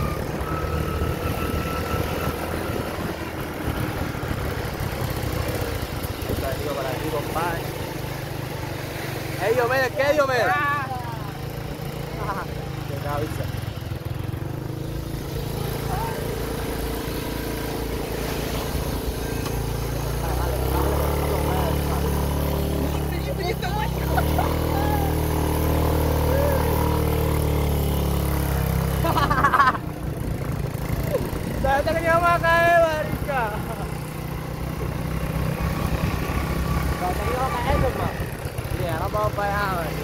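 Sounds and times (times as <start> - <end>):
small motorcycle engine running: 0.0 - 40.0
voices: 9.2 - 14.0, 15.4 - 27.4, 28.4 - 40.0.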